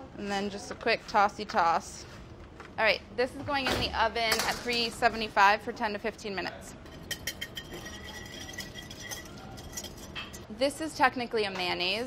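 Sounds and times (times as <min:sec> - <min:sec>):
glass clinking: 0:06.8 - 0:10.5.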